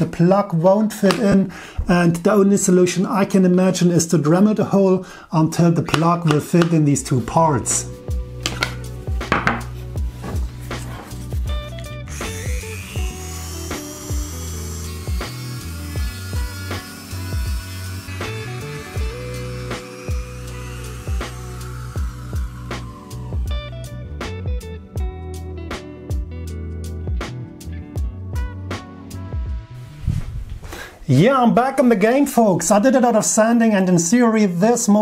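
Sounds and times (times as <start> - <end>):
background music with steady beat: 6.3 - 30.1
rotary tool grinding: 12.1 - 23.5.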